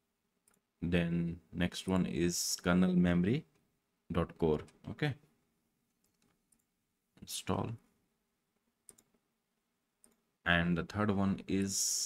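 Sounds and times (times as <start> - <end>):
computer mouse clicks: 5.9 - 6.7, 8.8 - 9.2, 10.0 - 10.2.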